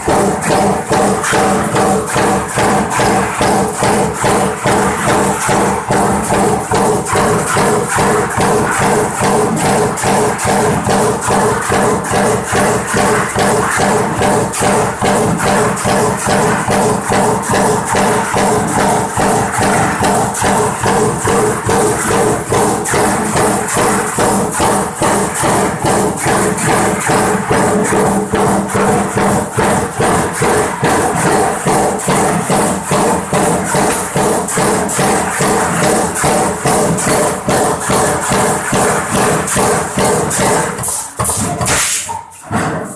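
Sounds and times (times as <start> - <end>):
steady machine hum: 0.0 - 41.2
stamping press metallic clacks: 0.0 - 42.9.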